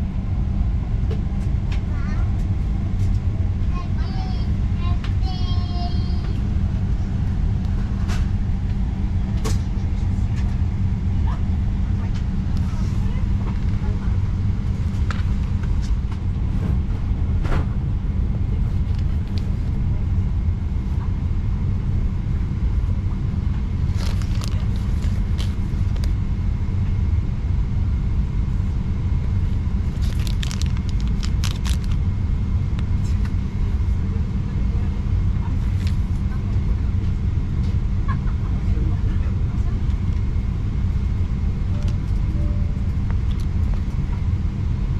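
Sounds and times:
airliner cabin rumble: 0:00.0 - 0:44.9
clicks and rustles of small items: 0:23.9 - 0:26.1, 0:29.9 - 0:32.0.

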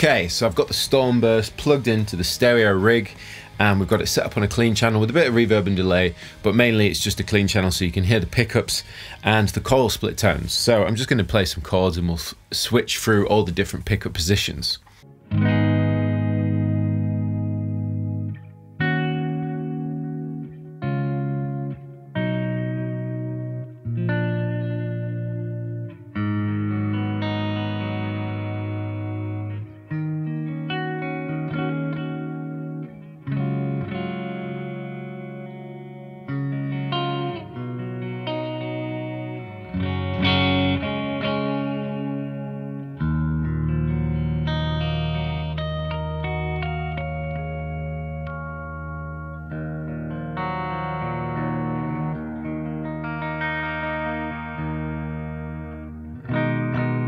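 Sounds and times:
clean electric guitar chords: 0:15.0 - 0:57.0.

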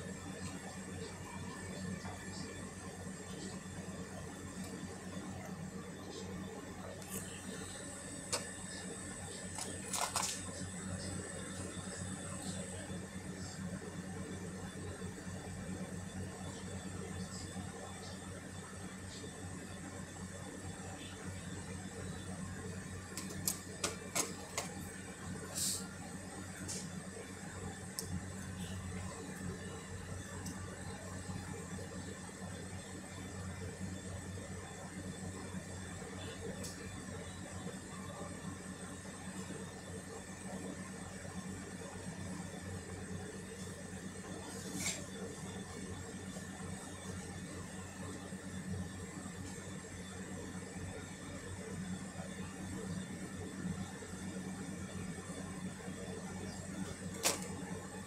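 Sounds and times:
low hum and whir: 0:00.0 - 0:58.0.

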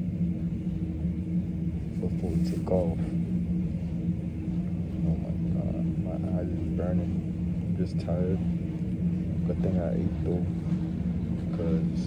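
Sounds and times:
low machinery hum and rumble: 0:00.0 - 0:12.0.

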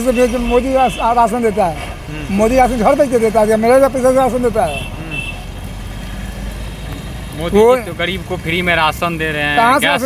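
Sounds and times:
motorbikes and cars passing: 0:00.0 - 0:10.0.

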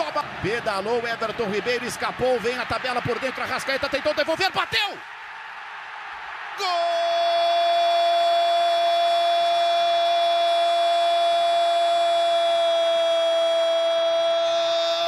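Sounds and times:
stadium crowd noise: 0:00.0 - 0:15.0.

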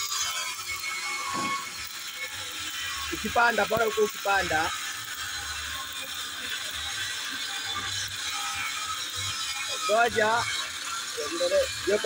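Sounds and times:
welding arc crackling: 0:00.0 - 0:12.0.

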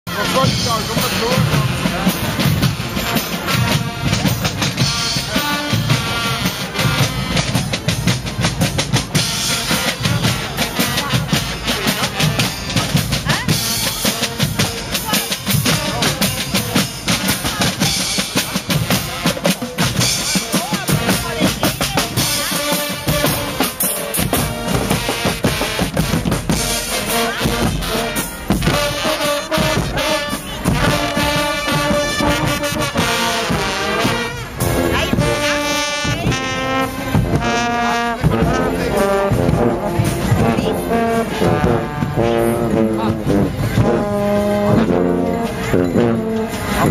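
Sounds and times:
marching carnival band: 0:00.0 - 0:46.9
bass and snare drums beat: 0:00.1 - 0:46.9
brass melody: 0:00.1 - 0:46.9.

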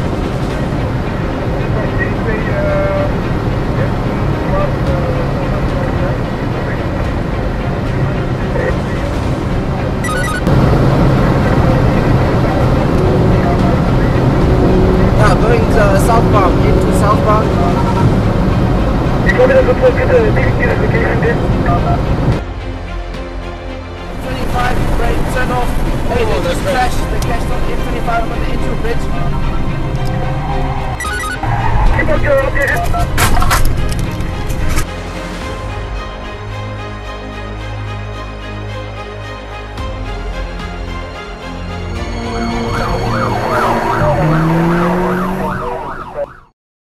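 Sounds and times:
indistinct voices: 0:00.0 - 0:22.4, 0:24.1 - 0:34.9, 0:41.8 - 0:46.3
background music: 0:00.0 - 0:46.5
car road and engine noise: 0:00.0 - 0:46.5
emergency siren yelping: 0:10.0 - 0:10.6, 0:29.8 - 0:33.2, 0:42.2 - 0:46.5.

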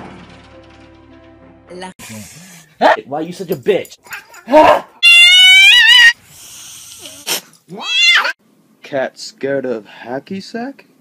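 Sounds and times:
cat screeching: 0:04.6 - 0:06.2, 0:07.7 - 0:08.4.

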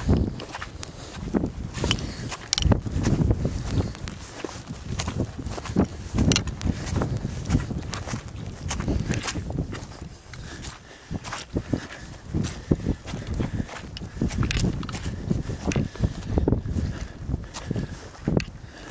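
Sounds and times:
footsteps through grass: 0:00.0 - 0:18.9.

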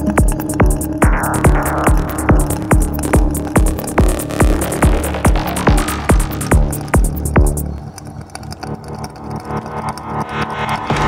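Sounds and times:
processed synth textures: 0:00.0 - 0:11.0
rolling synth bassline: 0:00.0 - 0:11.0
kick drum: 0:00.2 - 0:07.6.

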